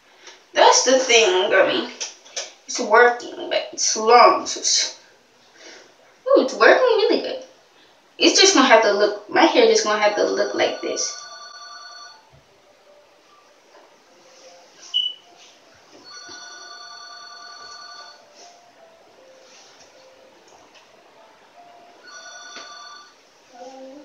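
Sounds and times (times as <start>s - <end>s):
electronic ringing tone: 10.7s - 12.3s, 16.0s - 18.5s, 22.0s - 23.2s.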